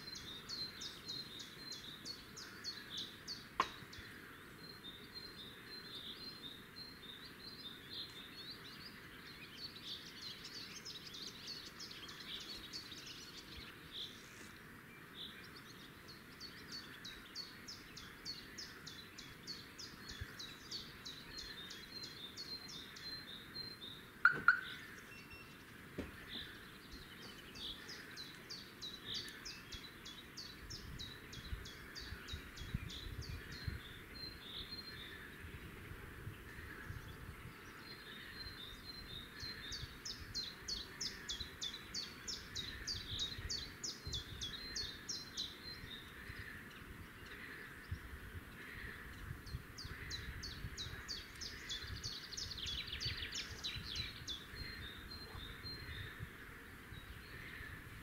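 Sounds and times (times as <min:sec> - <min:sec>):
nestlings begging calls: 0:24.2 - 0:25.0.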